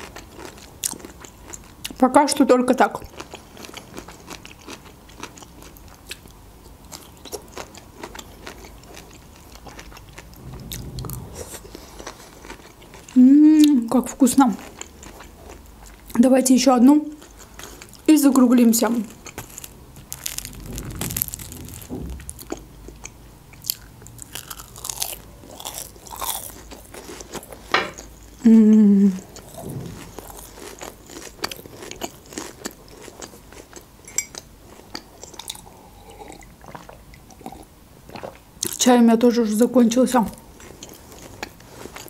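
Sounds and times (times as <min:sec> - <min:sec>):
crunchy chewing: 0:03.0 - 0:10.9, 0:18.8 - 0:28.4, 0:29.2 - 0:38.8, 0:40.5 - 0:42.0
person humming mm: 0:13.2 - 0:13.8, 0:28.4 - 0:29.3.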